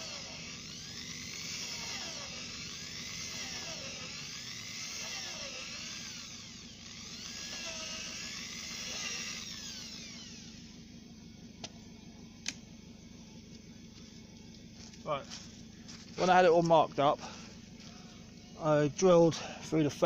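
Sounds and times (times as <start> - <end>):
electric drill boring through wood: 0.0 - 10.8.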